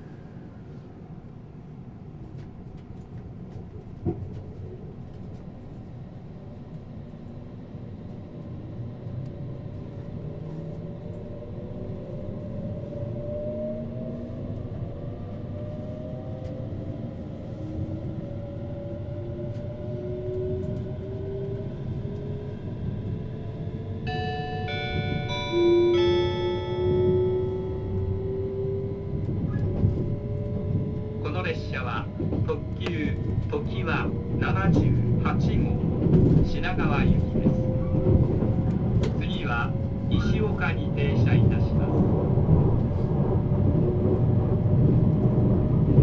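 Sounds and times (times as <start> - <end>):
train running gear rumble: 0.0 - 46.0
multi-note electronic chime: 24.1 - 28.3
traction motor whine rising: 26.8 - 31.2.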